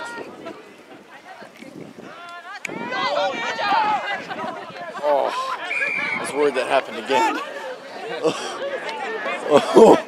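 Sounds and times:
voices shouting: 0.0 - 10.0.

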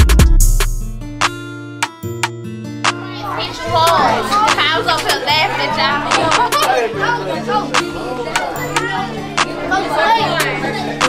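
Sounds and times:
background music with bass line: 0.0 - 3.1
children chattering and calling out: 2.9 - 11.0.

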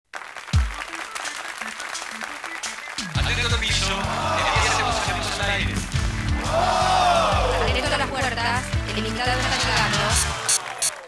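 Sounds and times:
audience applause: 0.1 - 8.4, 9.0 - 11.0.

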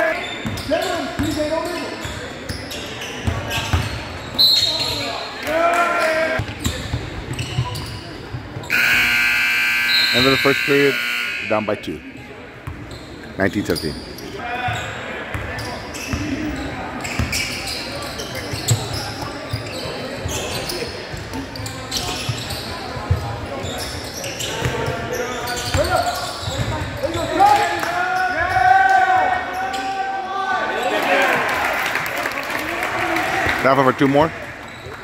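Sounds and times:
voices calling out: 8.6 - 12.2.

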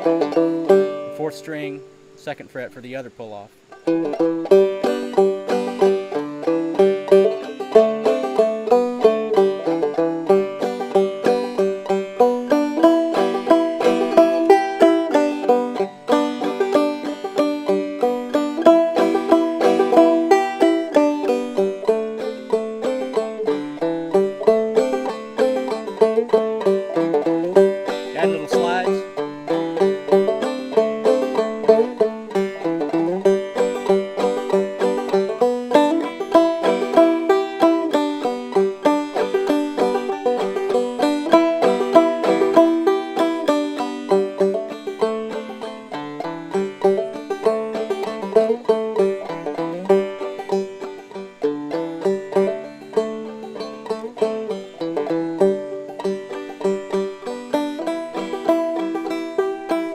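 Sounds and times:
banjo playing old-time tune: 0.0 - 59.9.

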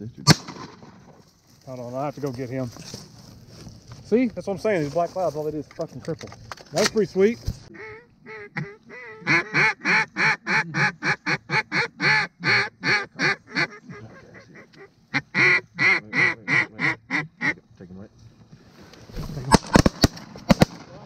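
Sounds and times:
duck call quacks: 7.7 - 17.6.

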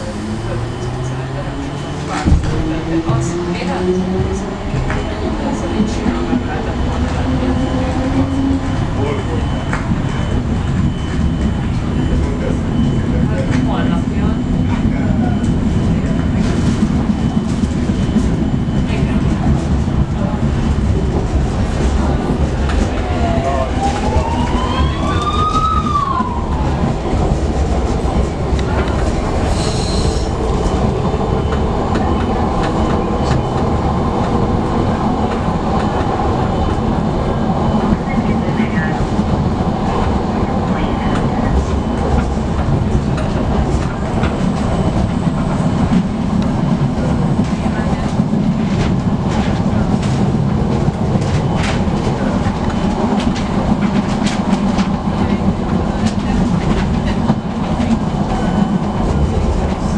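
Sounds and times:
train wheels rumbling on rails: 0.0 - 59.9
clickety-clack of rail joints: 0.5 - 36.9, 37.6 - 59.9
high squeal: 29.4 - 30.8.

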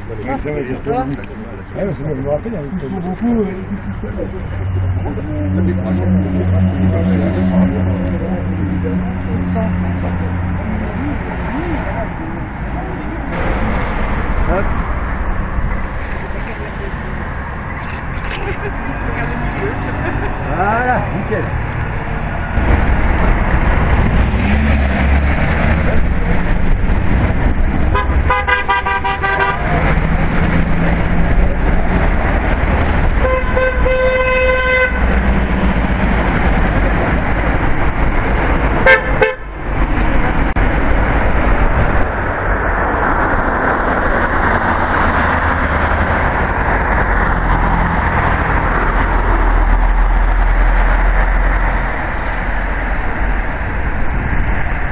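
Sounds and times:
road traffic passing: 0.0 - 54.9
car horns honking: 27.9 - 30.0, 33.2 - 35.3, 38.8 - 39.6.

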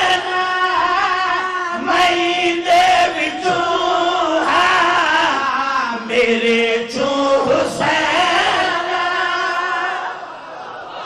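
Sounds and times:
men chanting with long notes: 0.0 - 11.0.

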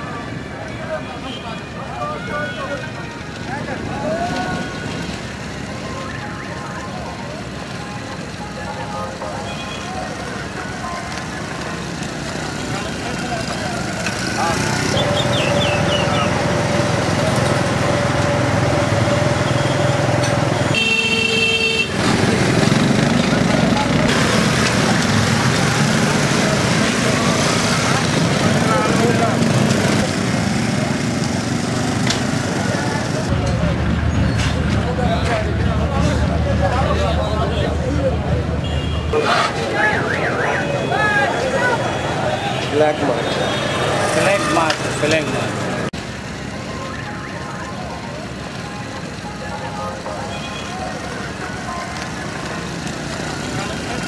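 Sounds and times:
many people talking: 0.0 - 20.7, 22.2 - 54.0
motorcycle and vehicle traffic: 0.0 - 54.0.

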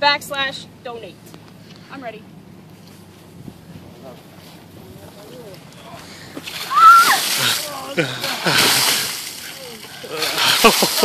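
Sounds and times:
water splashing down: 6.4 - 11.0
short high-pitched cry: 6.7 - 7.2.

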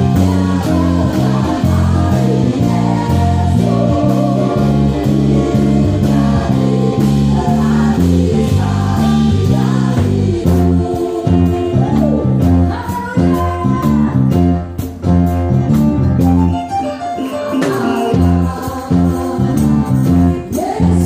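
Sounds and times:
people singing: 0.0 - 14.3, 17.2 - 21.0
drums: 0.0 - 21.0
electric bass line: 0.0 - 21.0.

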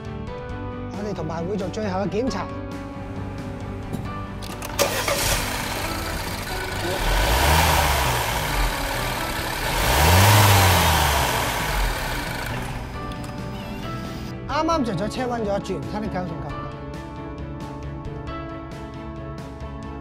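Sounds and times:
car engine idling and revving: 4.4 - 14.3
car engine starting: 4.4 - 14.3.

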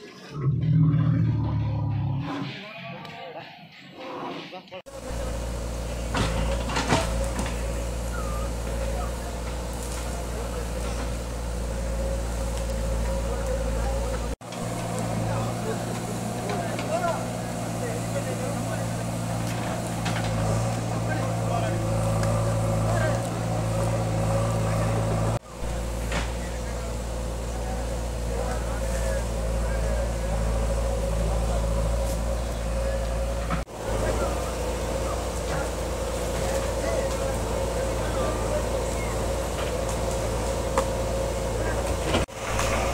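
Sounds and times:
people talking and calling: 0.0 - 42.9
diesel engine running: 0.3 - 2.3, 4.9 - 42.9.

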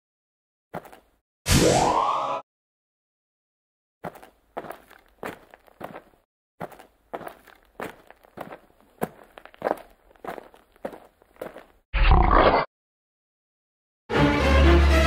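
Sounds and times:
footsteps walking: 0.8 - 1.2, 4.0 - 11.8.

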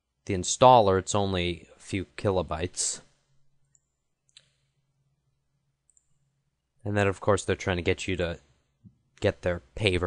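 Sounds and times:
computer mouse click: 5.9 - 6.2.

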